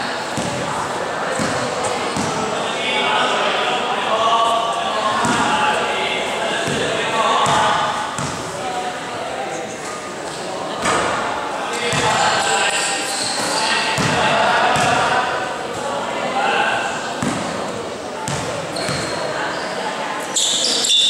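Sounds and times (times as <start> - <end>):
echoing talking voices: 0.0 - 21.0
basketball bouncing on gym court: 0.4 - 0.7, 1.3 - 2.4, 5.2 - 5.6, 6.6 - 8.5, 11.9 - 12.3, 14.0 - 15.1, 17.2 - 17.6, 18.2 - 19.2.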